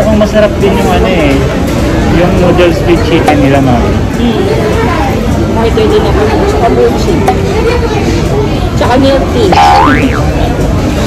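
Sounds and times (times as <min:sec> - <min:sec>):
restaurant chatter: 0:00.0 - 0:11.0
upward-gliding boing sound effect: 0:09.5 - 0:10.4.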